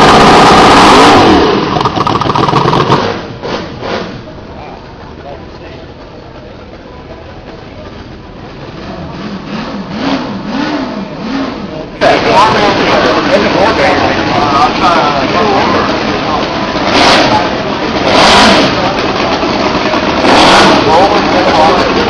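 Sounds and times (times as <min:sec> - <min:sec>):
model engine revving: 0:00.0 - 0:04.1, 0:08.8 - 0:22.0
room chatter: 0:04.2 - 0:22.0.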